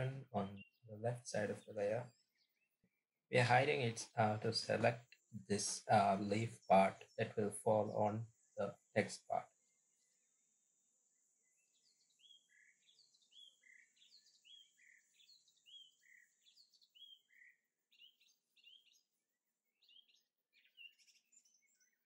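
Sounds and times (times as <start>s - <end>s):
bird chirping: 0.0s - 10.2s, 11.4s - 22.0s.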